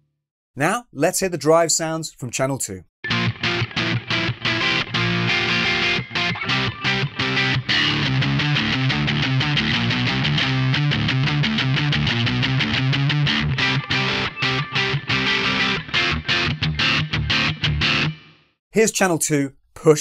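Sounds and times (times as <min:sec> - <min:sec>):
distorted electric guitar riff: 0:03.0 - 0:18.5.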